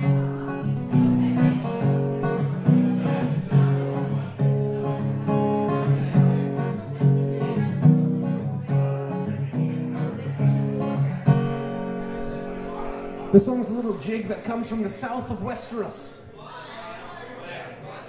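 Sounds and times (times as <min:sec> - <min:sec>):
acoustic guitar strumming: 0:00.0 - 0:16.0.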